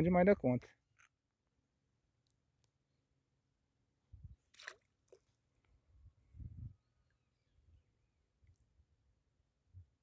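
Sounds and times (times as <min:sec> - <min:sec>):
small water splashes: 0:04.4 - 0:05.8.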